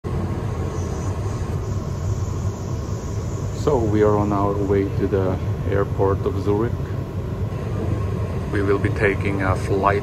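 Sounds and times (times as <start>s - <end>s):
train rumbling: 0.0s - 10.0s
faint steady hum: 0.1s - 10.0s.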